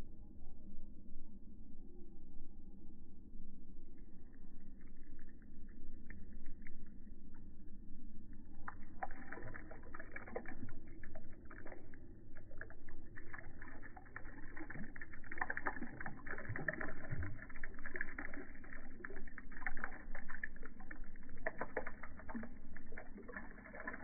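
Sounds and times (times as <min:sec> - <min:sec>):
liquid pouring into pond water: 0:04.0 - 0:24.0.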